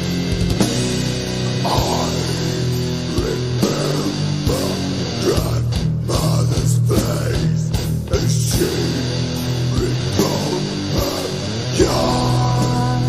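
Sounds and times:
distorted guitar and bass: 0:00.0 - 0:13.0
melodic guitar line: 0:00.0 - 0:13.0.

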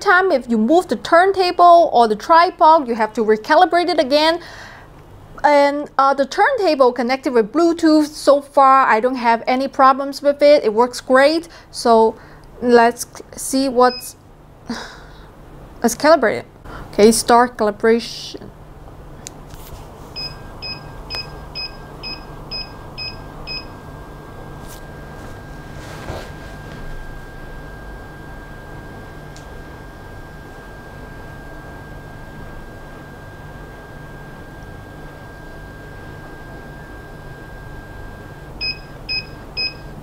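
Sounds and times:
low hum: 0:18.6 - 0:40.0
short electronic beeps: 0:20.2 - 0:23.8, 0:38.6 - 0:39.9.

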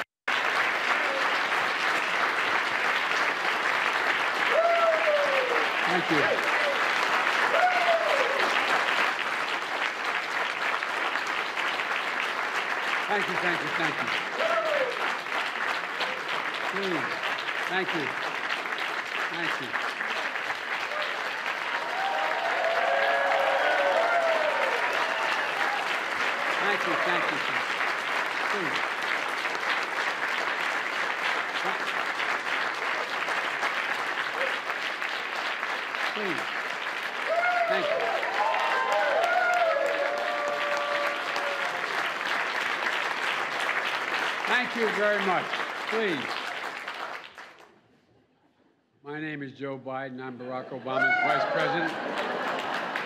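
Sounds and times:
audience applauding: 0:00.0 - 0:47.8, 0:50.9 - 0:53.0.

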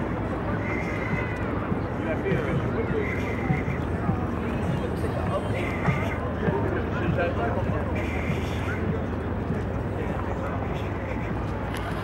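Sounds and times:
crowd walking: 0:00.0 - 0:12.0
traffic hum: 0:00.0 - 0:12.0
voices: 0:00.0 - 0:12.0.

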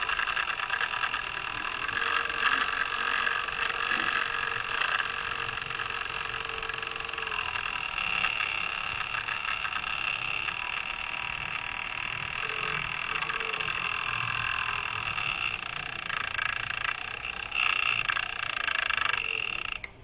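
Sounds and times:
higher whine: 0:00.0 - 0:20.0
small electric motor whining: 0:00.0 - 0:20.0.

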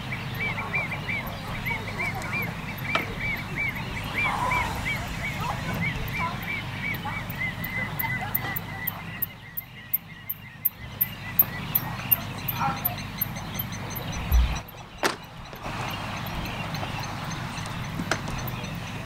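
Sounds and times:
bird chirps: 0:00.0 - 0:19.0.

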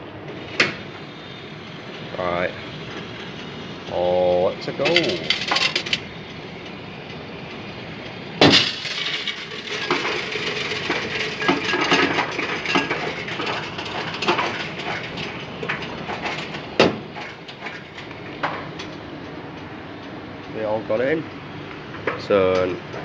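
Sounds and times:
coins rattling through sorter: 0:04.2 - 0:06.0, 0:08.4 - 0:18.1.

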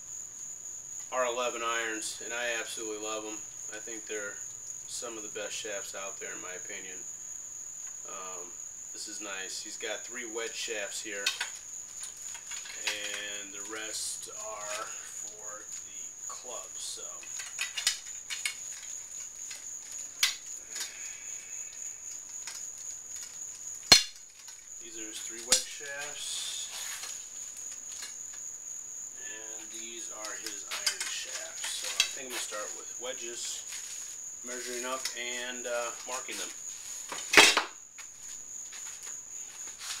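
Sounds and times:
handling rustles and knocks: 0:11.1 - 0:20.9, 0:21.8 - 0:28.5, 0:29.5 - 0:40.0.

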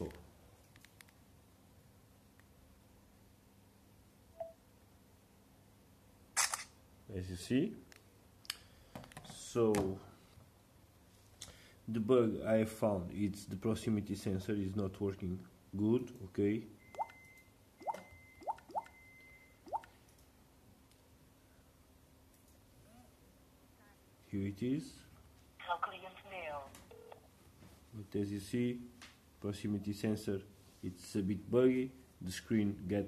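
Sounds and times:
faint beep: 0:04.4 - 0:04.6, 0:16.8 - 0:19.8
phone camera shutter click: 0:06.4 - 0:06.8.

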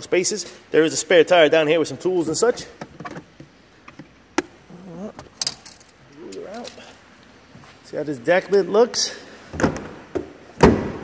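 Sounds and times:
trunk lid thump: 0:10.6 - 0:11.0.

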